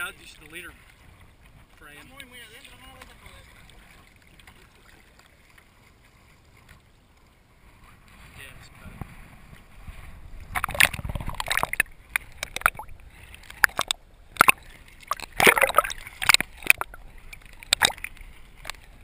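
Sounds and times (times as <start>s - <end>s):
underwater splashing and gurgling: 0.0s - 8.4s, 9.0s - 19.0s
small waves lapping: 0.0s - 19.0s.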